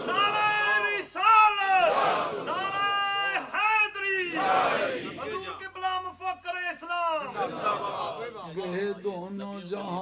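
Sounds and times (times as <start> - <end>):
congregation stirring: 0.0 - 8.9.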